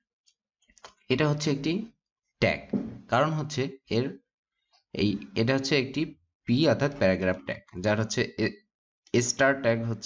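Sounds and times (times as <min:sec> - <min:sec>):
person talking: 0:01.1 - 0:04.2, 0:05.0 - 0:08.6, 0:09.2 - 0:10.0.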